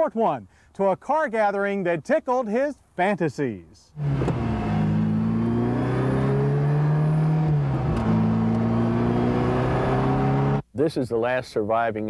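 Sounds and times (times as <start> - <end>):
car engine accelerating: 4.0 - 10.6.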